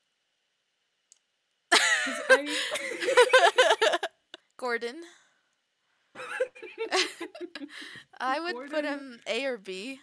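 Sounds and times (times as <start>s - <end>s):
person laughing: 1.7s - 4.2s, 6.2s - 8.0s.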